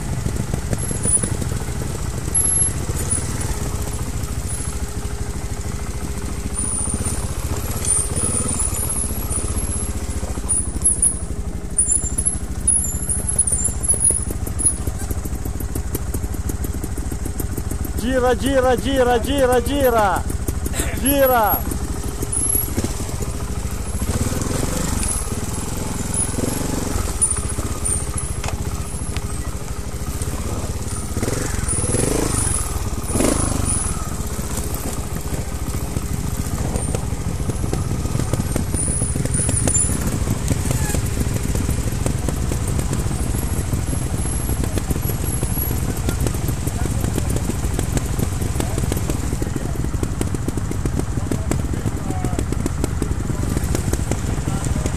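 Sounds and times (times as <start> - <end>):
motorcycle engine running: 0.0 - 54.9
short voices: 18.0 - 21.8.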